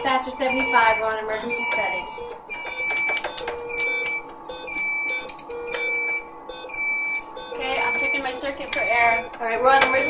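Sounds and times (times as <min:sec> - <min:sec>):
high alarm beep: 0:00.0 - 0:10.0
lower alarm tone: 0:00.0 - 0:10.0
clicks of tubing and connectors: 0:02.6 - 0:04.3.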